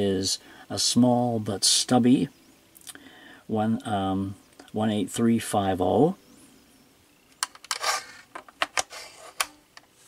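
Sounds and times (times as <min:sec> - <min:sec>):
battery scraping into charger slot: 0:07.4 - 0:09.6.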